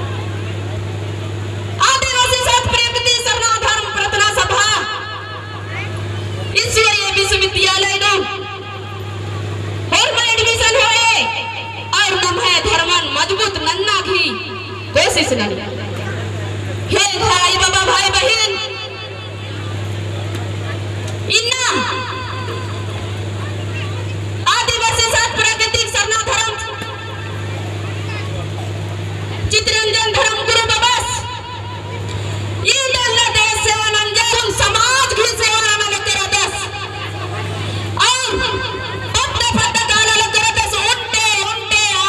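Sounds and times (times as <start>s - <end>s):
steady low hum: 0.0s - 42.0s
woman speaking over loudspeaker: 1.8s - 16.0s, 16.9s - 19.5s, 21.3s - 28.3s, 29.4s - 42.0s.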